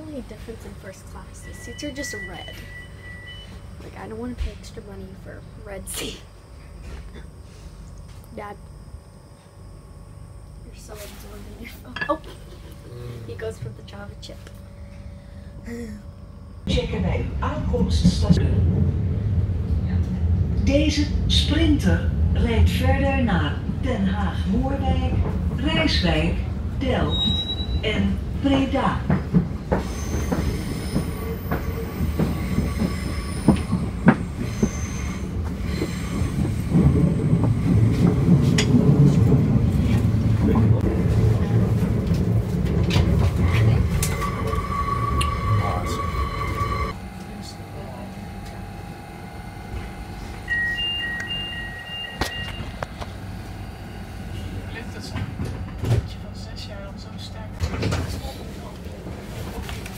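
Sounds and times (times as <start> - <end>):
train rumbling on rails: 16.6 - 59.9.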